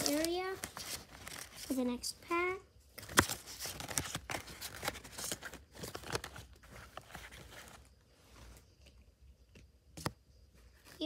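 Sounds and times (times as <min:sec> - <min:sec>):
foil wrapper crinkling and tearing: 0:00.0 - 0:01.8.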